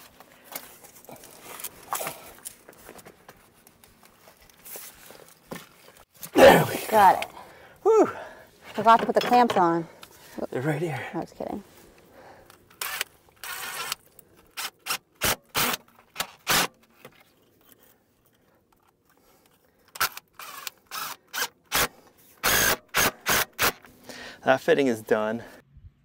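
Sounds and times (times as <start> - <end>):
cordless driver running in bursts: 20.0 - 23.8.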